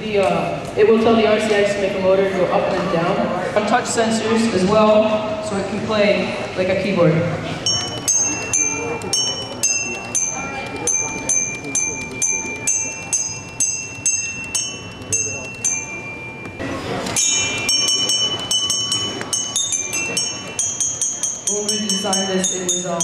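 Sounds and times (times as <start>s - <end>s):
robot mallets striking tuned bars: 7.6s - 23.0s.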